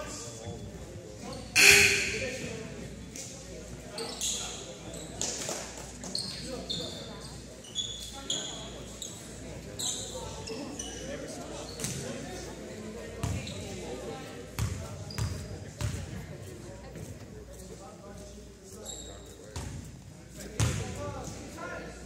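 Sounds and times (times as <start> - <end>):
voices echoing: 0.0 - 19.8
shoes squeaking on hardwood floor: 18.8 - 19.5.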